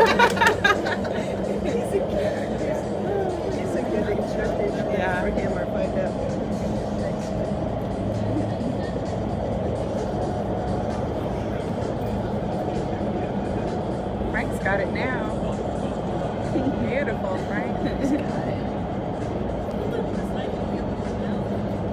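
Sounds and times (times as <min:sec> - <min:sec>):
wind tunnel fans rushing: 0:00.0 - 0:21.9.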